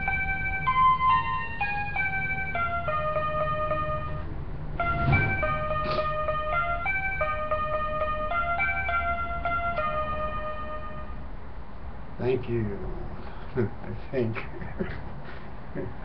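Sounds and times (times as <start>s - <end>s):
electronic keyboard melody: 0.0s - 11.3s.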